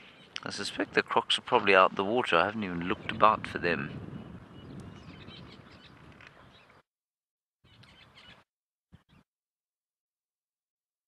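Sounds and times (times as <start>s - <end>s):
faint wind noise: 0.0s - 6.8s
faint high bird chirps: 7.6s - 8.4s.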